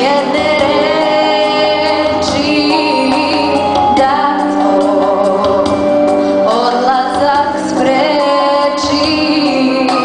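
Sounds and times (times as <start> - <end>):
backing music chords: 0.0 - 10.0
girl singing into microphone: 0.0 - 10.0.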